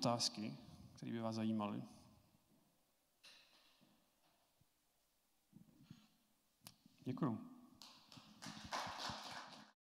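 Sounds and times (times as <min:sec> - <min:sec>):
light applause: 0:07.9 - 0:09.8.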